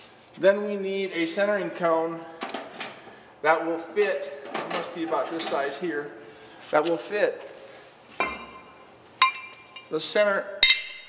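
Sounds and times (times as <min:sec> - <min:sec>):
metal clinks ringing: 0:08.2 - 0:10.0, 0:10.6 - 0:11.0.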